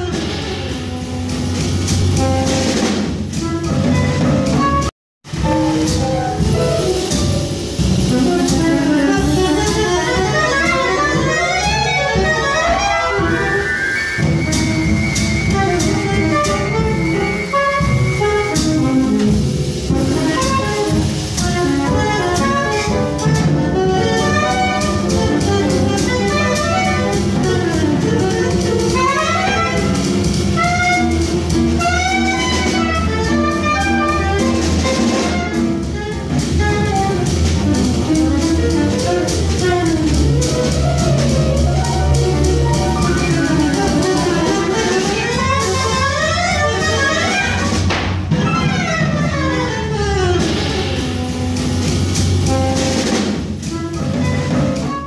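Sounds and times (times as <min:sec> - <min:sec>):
drums: 0:00.0 - 0:55.0
soprano saxophone fast runs: 0:08.0 - 0:19.3, 0:20.0 - 0:53.0.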